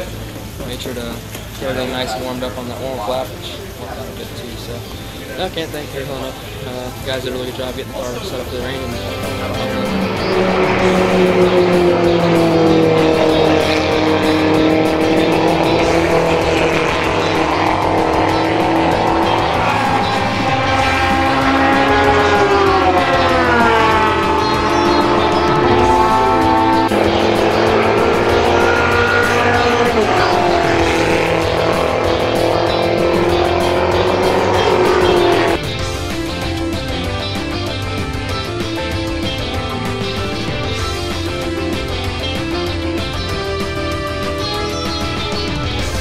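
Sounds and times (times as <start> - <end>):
background music: 0.0 - 46.0
race car engines: 0.0 - 46.0
music with guitar: 3.3 - 46.0.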